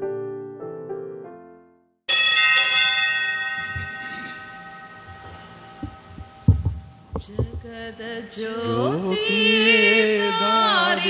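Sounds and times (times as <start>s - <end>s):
keyboard chord ringing: 0.0s - 7.0s
low thumps: 5.1s - 8.1s.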